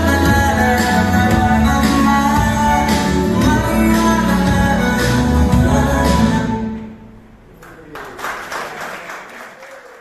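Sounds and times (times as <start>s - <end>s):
dance music: 0.0s - 6.8s
audience clapping: 7.5s - 10.0s.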